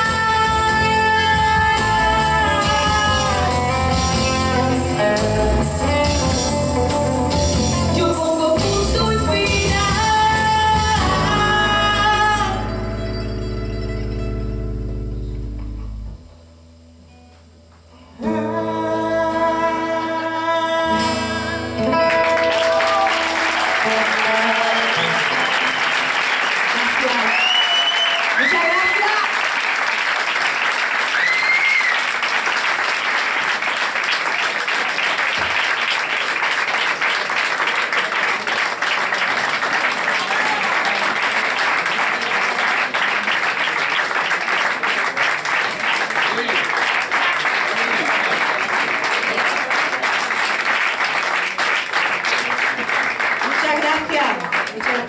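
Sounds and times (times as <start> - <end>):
audience applauding: 21.8 - 55.0
whistles: 24.7 - 26.1, 27.3 - 28.6, 31.1 - 32.1.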